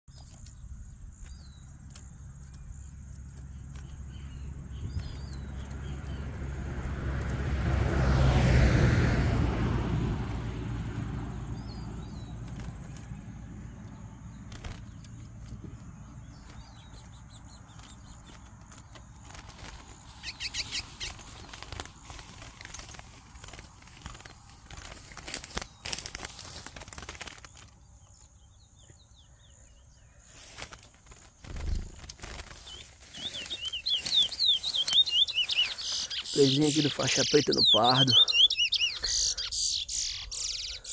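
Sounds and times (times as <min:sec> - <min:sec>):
bird chirping: 0:00.1 - 0:06.6, 0:11.2 - 0:40.9
bird singing descending notes: 0:11.5 - 0:26.6, 0:31.5 - 0:40.9.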